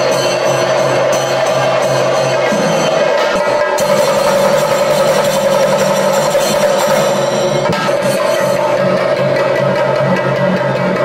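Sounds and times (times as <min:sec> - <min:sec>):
steady held tone: 0:00.0 - 0:09.6
fast drum rolls: 0:01.7 - 0:11.0.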